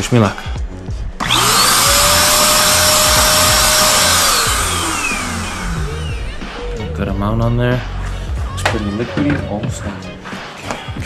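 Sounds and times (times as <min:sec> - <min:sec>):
paint sprayer motor whine: 0:01.2 - 0:06.4.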